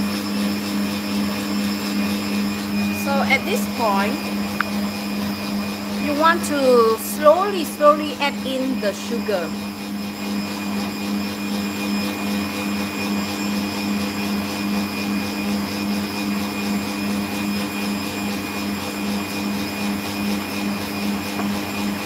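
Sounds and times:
stand mixer motor running: 0.0s - 22.0s.

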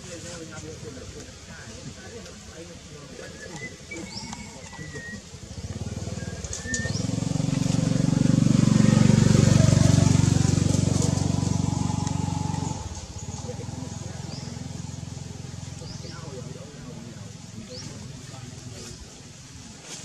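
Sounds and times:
motor engine running: 4.0s - 19.2s.

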